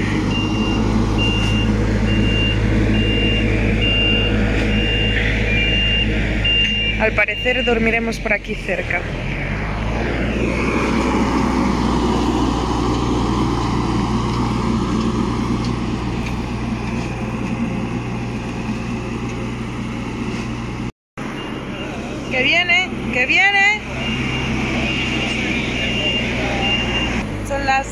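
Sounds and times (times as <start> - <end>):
diesel engine running: 0.0 - 27.9
woman speaking: 7.0 - 9.2, 22.3 - 23.9, 27.4 - 27.9.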